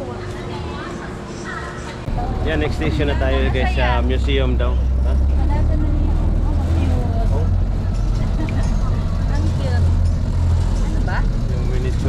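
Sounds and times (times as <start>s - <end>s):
people talking: 0.0s - 10.0s, 10.7s - 12.0s
vehicle rumble: 2.0s - 12.0s.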